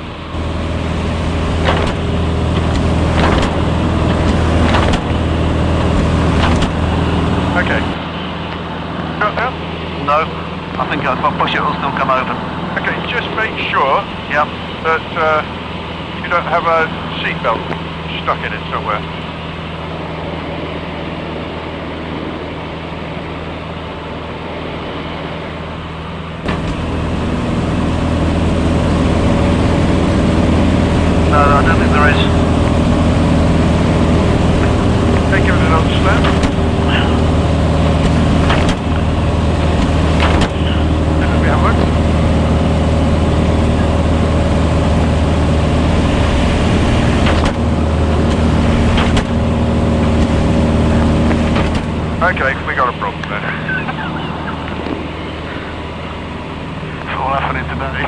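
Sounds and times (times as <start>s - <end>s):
aircraft engine and propeller drone: 0.0s - 58.0s.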